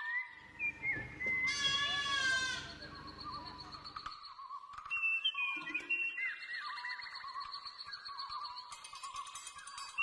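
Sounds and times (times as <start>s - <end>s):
young goat bleating: 1.4s - 2.8s.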